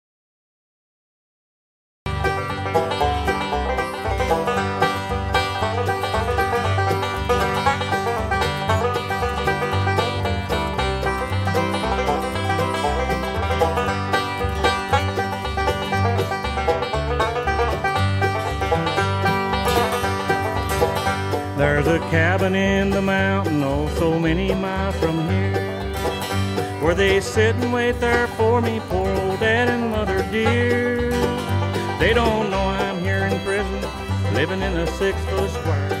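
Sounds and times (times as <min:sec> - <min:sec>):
banjo-led bluegrass music: 0:02.1 - 0:36.0
walking bass line: 0:02.1 - 0:36.0
person singing: 0:21.6 - 0:25.9, 0:26.8 - 0:36.0.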